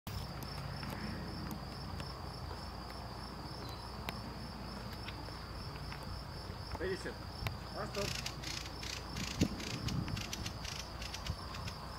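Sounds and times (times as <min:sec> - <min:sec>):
insect trill: 0:00.1 - 0:11.9.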